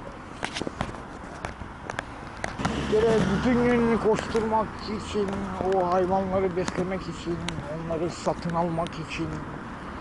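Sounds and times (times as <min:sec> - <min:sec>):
footsteps on paved street: 0:00.2 - 0:09.6.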